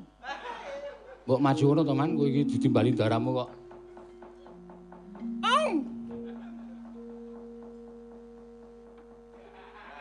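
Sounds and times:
gamelan instruments ringing: 0:01.8 - 0:10.0.

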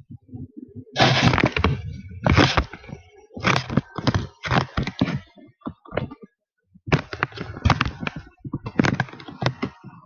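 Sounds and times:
microphone handling rubs and knocks: 0:00.0 - 0:06.3, 0:06.9 - 0:10.0.

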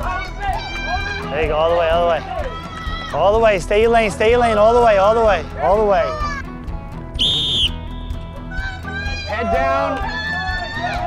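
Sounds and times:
sports whistle blast: 0:07.2 - 0:07.9.

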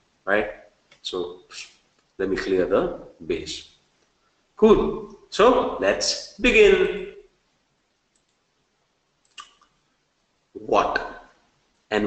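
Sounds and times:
faint computer mouse clicks: 0:08.1 - 0:08.4.

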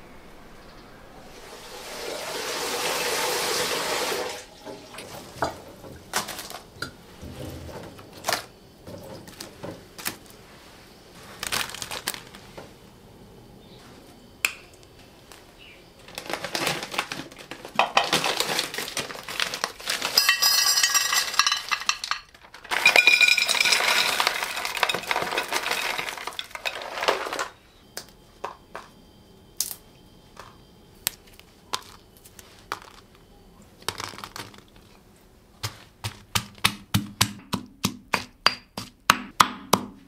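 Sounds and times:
clams and containers clattering: 0:05.0 - 0:10.2, 0:16.0 - 0:27.6, 0:33.8 - 0:34.9
rustling: 0:05.0 - 0:12.9, 0:15.0 - 0:27.6.

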